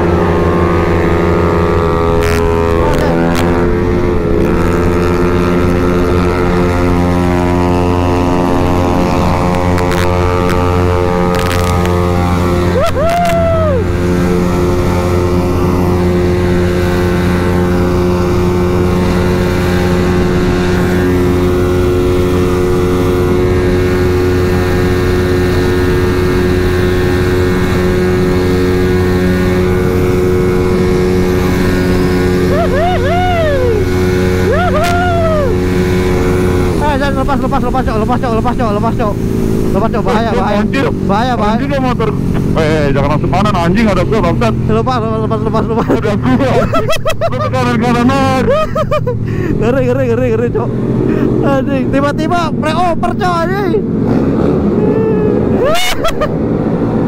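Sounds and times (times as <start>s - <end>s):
rising and falling tone: 0.0s - 57.0s
scooter engine at full throttle: 0.0s - 57.0s
wind rush on microphone: 0.0s - 57.0s.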